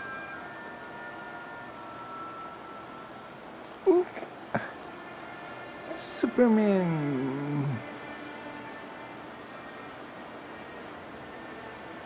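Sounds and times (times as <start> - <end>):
faint high-pitched tones: 0.0 - 12.0
low even hiss: 0.0 - 12.0.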